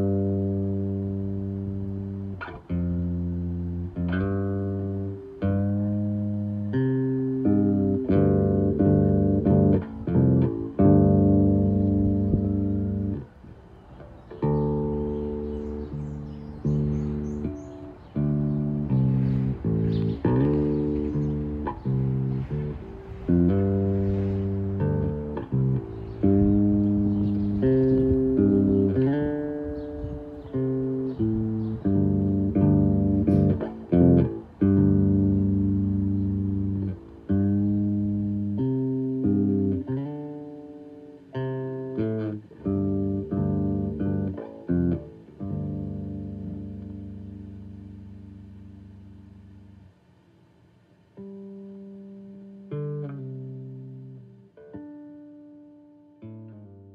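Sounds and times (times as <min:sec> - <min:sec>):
plucked guitar music: 0:00.0 - 0:56.9.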